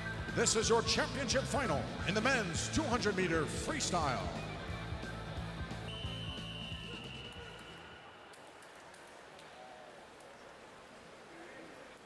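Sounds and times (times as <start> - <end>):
arena music: 0.0 - 7.9
long steady whistle: 5.8 - 8.6.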